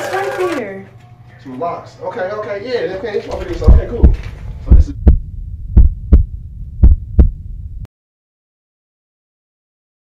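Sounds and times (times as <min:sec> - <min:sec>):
heartbeat thumps: 0:03.3 - 0:07.9
low hum: 0:03.3 - 0:07.9.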